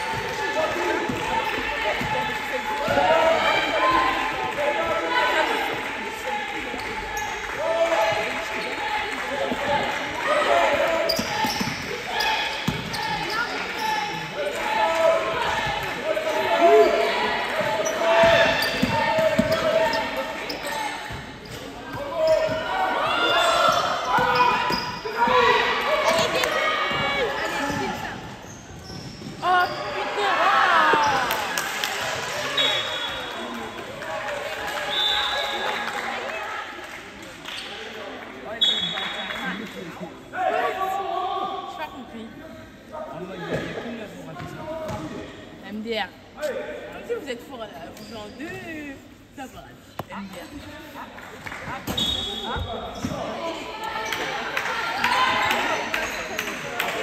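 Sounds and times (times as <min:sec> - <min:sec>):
sneakers squeaking: 0:06.8 - 0:08.8, 0:10.5 - 0:14.3, 0:16.7 - 0:31.4, 0:47.6 - 0:49.0, 0:49.8 - 0:51.0, 0:51.6 - 0:54.4, 0:55.4 - 0:56.7
basketball bouncing on court: 0:12.6 - 0:13.1, 0:18.2 - 0:19.7.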